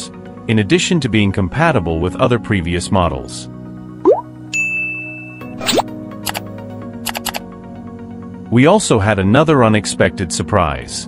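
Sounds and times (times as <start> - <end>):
background music: 0.0 - 11.0
ding tone: 4.1 - 5.6
cartoon rising pop: 5.6 - 5.9
quick clicks: 5.6 - 7.4.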